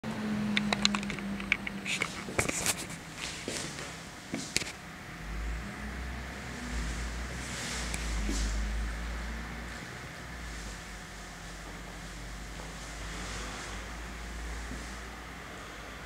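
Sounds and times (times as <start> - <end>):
low steady rumble: 0.0 - 16.0
sharp clicks and knocks: 0.5 - 2.9.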